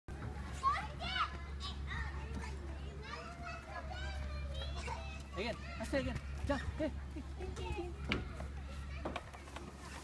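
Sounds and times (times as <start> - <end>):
children calling and squealing: 0.1 - 10.0.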